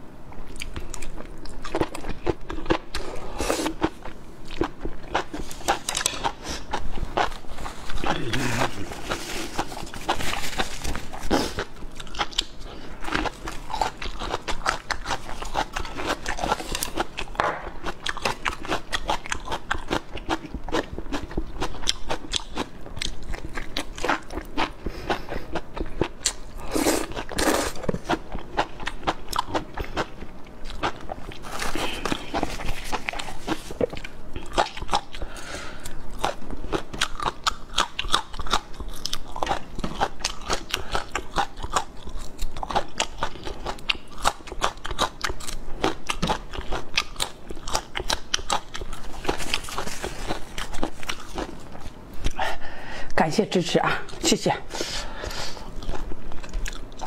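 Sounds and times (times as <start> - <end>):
wet crunchy chewing: 0.5 - 52.4, 55.1 - 57.0.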